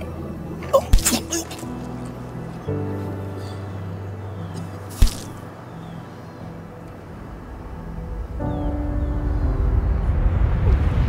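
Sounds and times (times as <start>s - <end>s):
low background music: 0.0s - 11.0s
knife stab hit: 0.8s - 1.6s, 4.9s - 5.4s.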